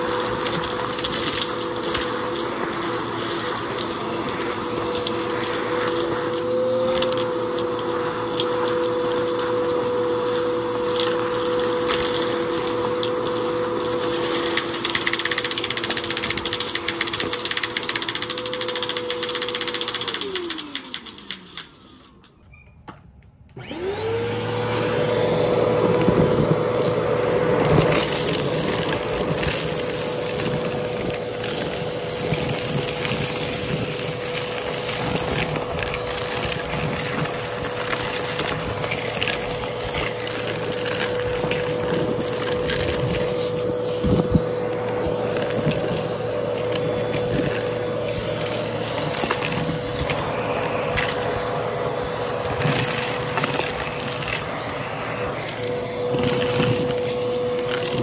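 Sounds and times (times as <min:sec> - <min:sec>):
debris crackling in vacuum: 0:00.0 - 0:21.6, 0:23.8 - 0:58.0
vacuum cleaner motor whine: 0:00.0 - 0:58.0.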